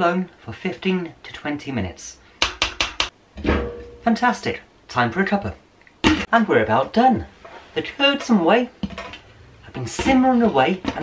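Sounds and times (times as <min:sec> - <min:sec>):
utensil knocking on metal pot: 0:02.4 - 0:04.0.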